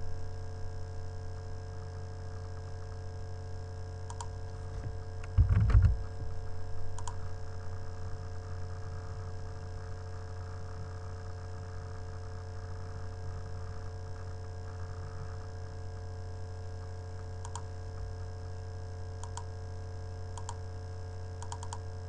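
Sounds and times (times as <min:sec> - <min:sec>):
steady electrical hum: 0:00.0 - 0:22.0
mouse click: 0:04.1 - 0:04.4, 0:07.0 - 0:07.2, 0:17.4 - 0:17.7, 0:19.2 - 0:19.5, 0:20.4 - 0:20.6, 0:21.4 - 0:21.8.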